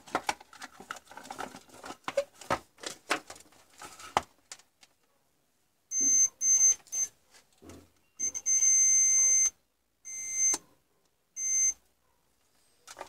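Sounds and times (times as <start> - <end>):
multimeter continuity buzzer beeping: 5.9 - 7.1, 8.2 - 10.6, 11.4 - 11.8.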